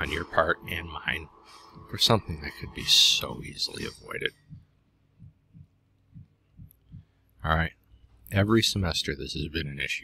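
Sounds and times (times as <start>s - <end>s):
faint low hum: 0.0s - 10.0s
soft low thumps: 4.2s - 7.4s.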